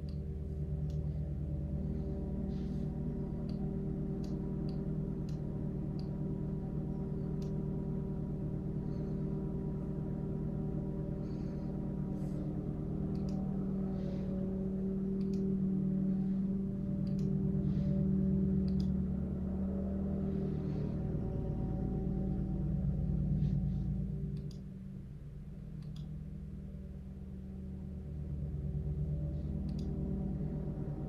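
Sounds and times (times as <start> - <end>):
low droning hum: 0.0 - 31.0
faint ticks: 3.4 - 6.3, 13.1 - 14.1, 17.0 - 17.4, 29.4 - 30.0.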